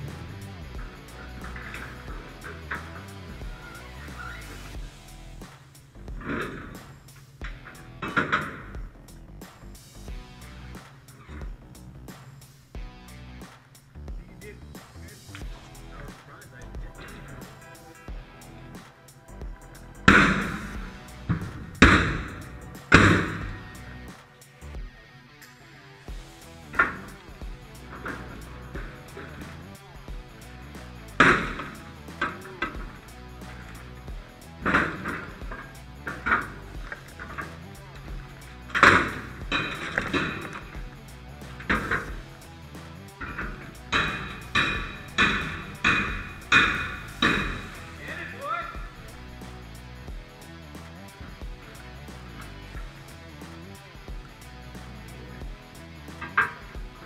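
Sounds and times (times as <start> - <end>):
background music: 0.0 - 57.0
metal strikes on door: 20.1 - 23.8, 31.1 - 33.1, 34.5 - 37.7, 38.6 - 42.4, 43.2 - 48.1.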